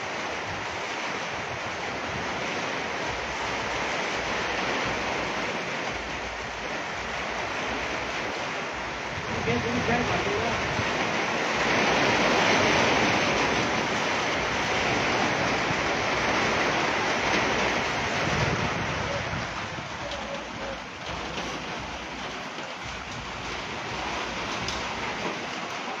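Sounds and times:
heavy rain on metal roofs: 0:00.0 - 0:26.0.

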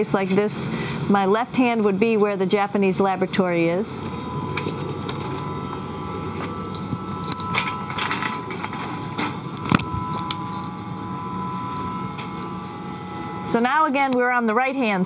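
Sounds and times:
constant hum tones: 0:00.0 - 0:15.0
ventilation fans whirring: 0:00.0 - 0:15.0.

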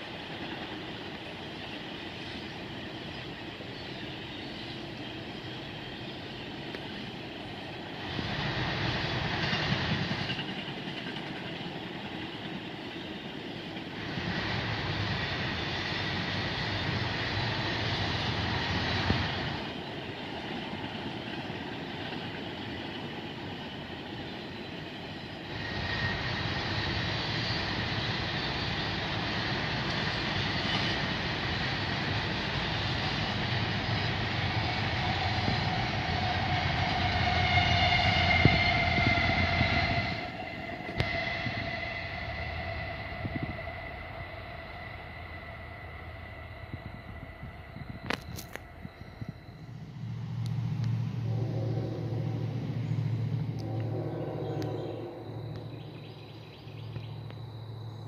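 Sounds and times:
freight train wheels clattering: 0:00.0 - 0:42.6
high-pitched tones: 0:51.2 - 0:57.3.

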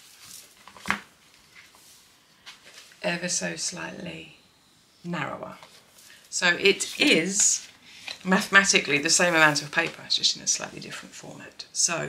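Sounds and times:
paper rustling: 0:00.0 - 0:03.0.

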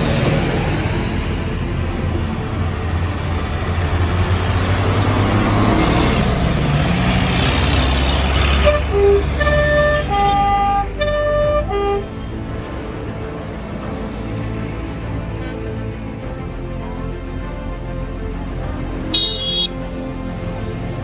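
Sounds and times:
tractor diesel engines droning: 0:00.0 - 0:21.0.

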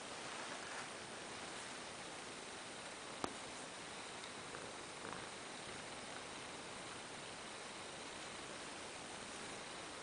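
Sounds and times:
cat purring faintly: 0:00.0 - 0:10.0
steady hiss: 0:00.0 - 0:10.0.

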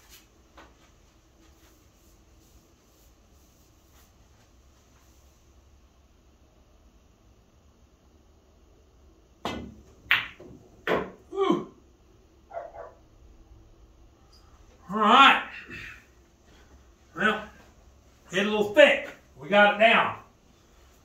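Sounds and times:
cue tip striking cue ball: 0:09.4 - 0:11.2
pool balls clacking: 0:09.4 - 0:11.3.

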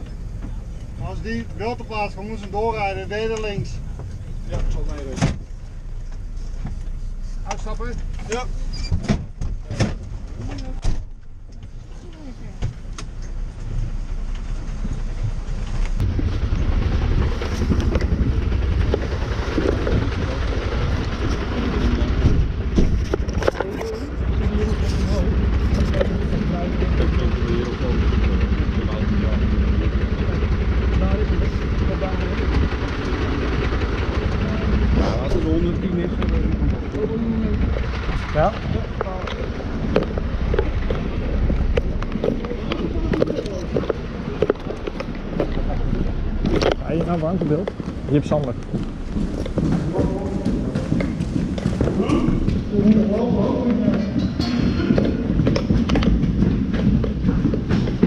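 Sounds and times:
fire engine engine running: 0:00.0 - 0:58.0
loud low rumble: 0:13.3 - 0:58.0.

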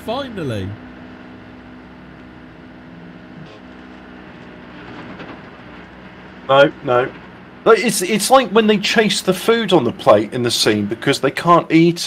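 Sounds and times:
crane engine running: 0:00.0 - 0:12.0.

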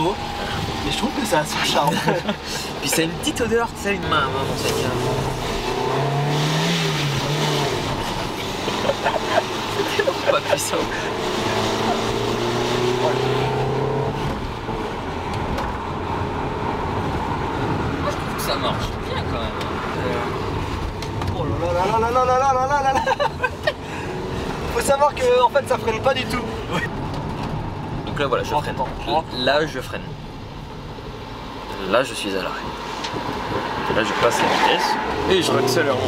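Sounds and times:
van engine and road noise: 0:00.0 - 0:36.0.

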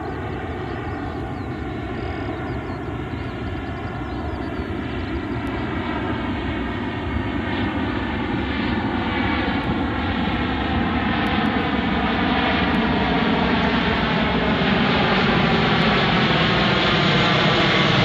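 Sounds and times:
jet aircraft flying overhead: 0:00.0 - 0:18.0.

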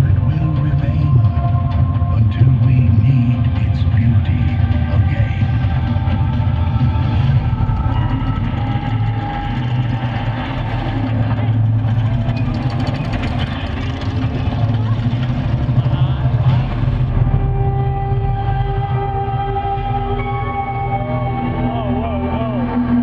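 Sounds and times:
deep ambient drone music: 0:00.0 - 0:23.0.

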